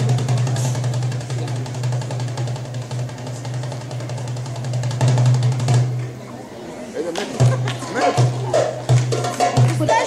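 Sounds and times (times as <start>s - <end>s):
goblet drum rapid roll: 0.0s - 6.0s, 7.4s - 10.0s.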